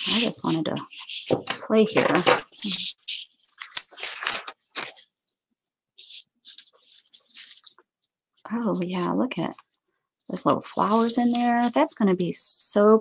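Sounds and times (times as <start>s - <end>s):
lace and paper rustling: 0.0s - 5.2s, 6.0s - 8.1s, 10.3s - 12.0s.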